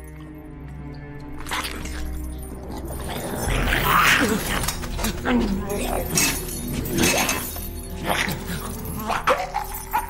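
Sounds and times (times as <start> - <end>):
metal chains rattling: 1.4 - 10.0.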